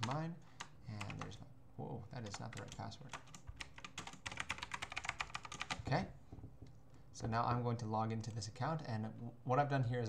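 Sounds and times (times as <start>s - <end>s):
fast typing on keyboard: 0.0s - 1.3s, 2.3s - 5.9s.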